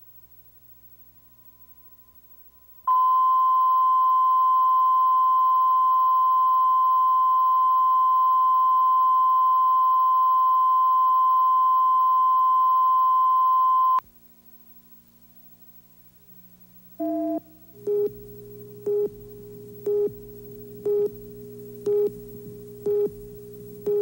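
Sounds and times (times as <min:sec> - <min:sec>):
steady line-up tone beep: 0:02.9 - 0:14.0, 0:17.0 - 0:24.0.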